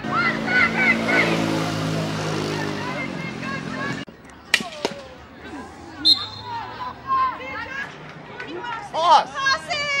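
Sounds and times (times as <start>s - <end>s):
girls whooping and calling: 5.6s - 10.0s.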